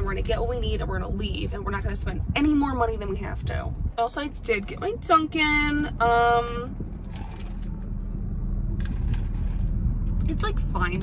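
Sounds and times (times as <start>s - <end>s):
car air conditioning rumble: 0.0s - 11.0s.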